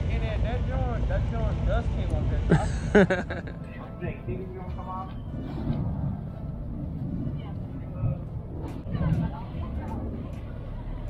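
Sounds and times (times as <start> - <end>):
low steady rumble: 0.0 - 11.0
distant people talking: 6.0 - 11.0.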